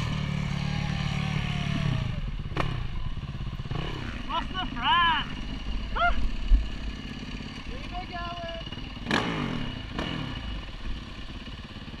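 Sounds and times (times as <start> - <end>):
dirt bike engine running: 0.0 - 12.0
person shouting: 4.3 - 6.3.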